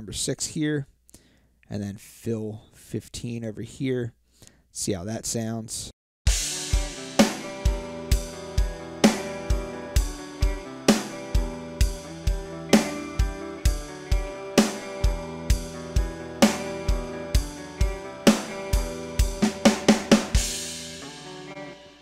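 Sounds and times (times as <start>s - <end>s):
kick and snare drum beat: 6.3s - 20.7s
guitars holding chords: 6.3s - 22.0s.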